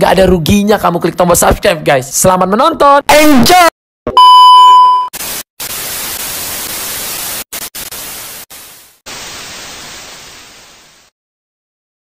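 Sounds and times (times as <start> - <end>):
test-card beep high tone: 4.1 - 5.1
tv static hiss: 5.2 - 11.1.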